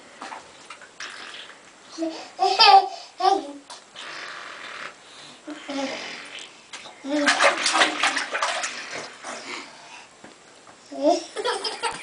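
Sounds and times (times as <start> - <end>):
quiet bath sounds: 0.0 - 11.2.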